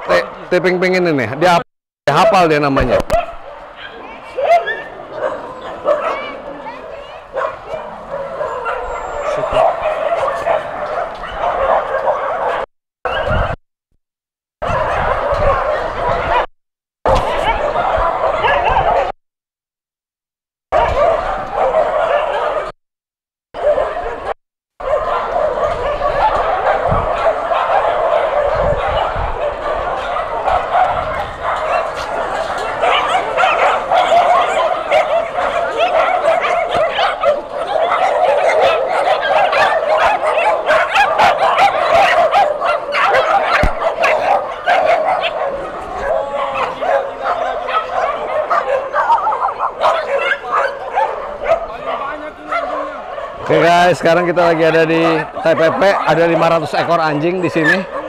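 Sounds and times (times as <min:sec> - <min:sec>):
dogs barking and yipping: 0:00.0 - 0:13.6, 0:14.6 - 0:16.5, 0:17.1 - 0:19.2, 0:20.7 - 0:22.8, 0:23.6 - 0:58.0.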